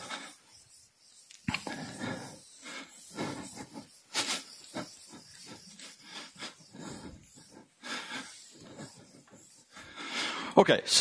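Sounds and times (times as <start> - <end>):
marker squeaking on whiteboard: 0.0 - 10.5.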